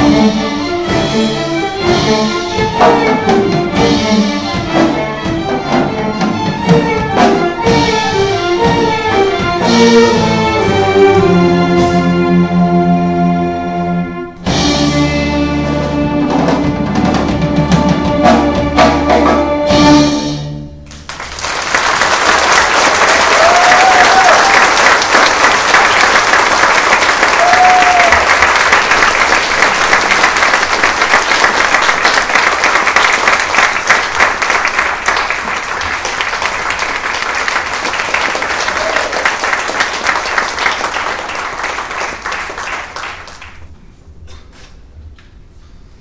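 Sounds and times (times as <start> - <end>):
audience applauding: 20.9 - 43.7
high calls from crowd: 23.0 - 25.2, 27.1 - 28.5.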